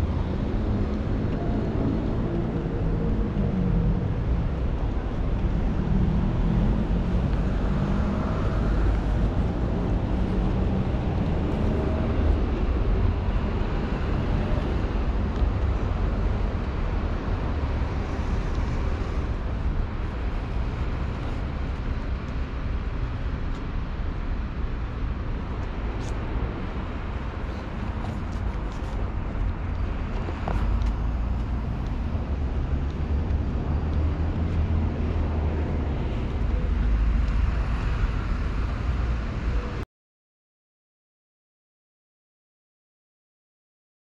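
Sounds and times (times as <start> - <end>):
city road traffic rumble: 0.0 - 39.8.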